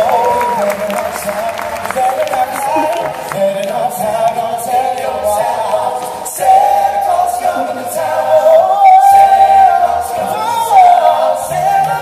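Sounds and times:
male a cappella group singing: 0.0 - 12.0.

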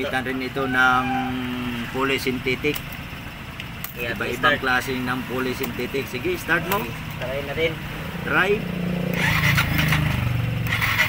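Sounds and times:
scooter engine idling: 0.0 - 11.0.

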